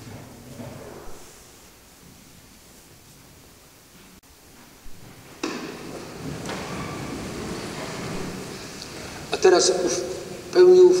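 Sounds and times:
shuffle and rustle of clothing: 0.0 - 9.4.

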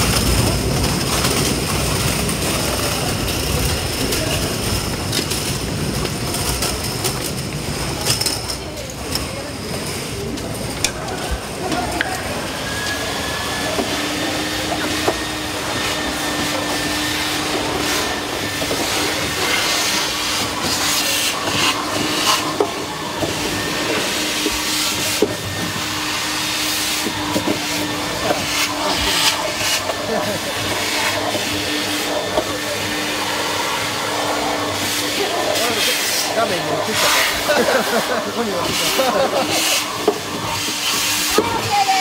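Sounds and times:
steady machine hum: 9.6 - 42.0
hissing bursts: 10.6 - 42.0.

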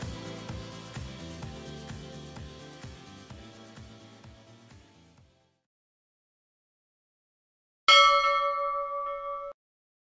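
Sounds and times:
bell chime: 7.9 - 9.6.

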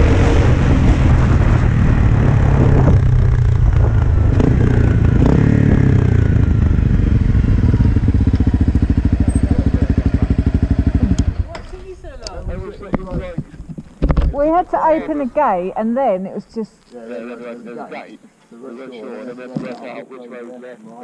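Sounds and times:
wind rush: 0.0 - 8.1
motorcycle engine running: 0.0 - 12.1
voices: 7.8 - 21.0.

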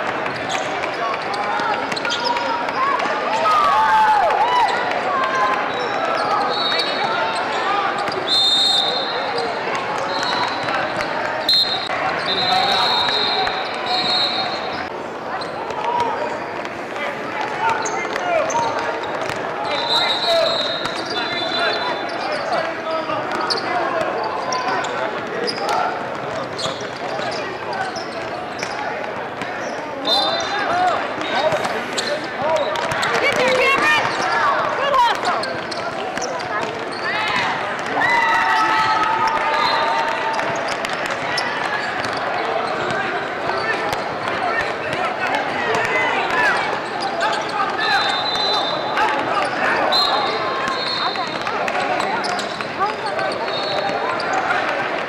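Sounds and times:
basketball bouncing on court: 32.6 - 39.5, 40.1 - 45.1.

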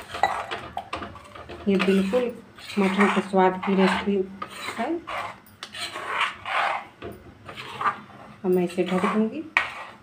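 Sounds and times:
metal spoon stirring thick gravy: 0.0 - 10.0.

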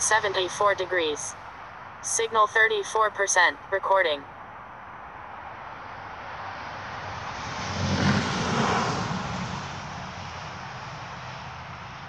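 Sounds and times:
vehicle passing by: 5.8 - 12.0.

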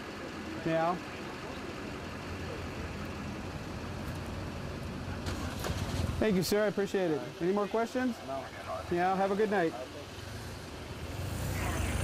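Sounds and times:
street background noise: 0.0 - 12.0
vehicle engine idling: 0.0 - 12.0.

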